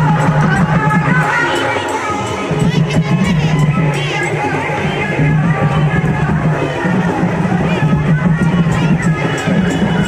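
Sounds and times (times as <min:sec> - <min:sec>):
crowd shouting and cheering: 0:00.0 - 0:10.0
loud music with heavy bass: 0:00.0 - 0:10.0.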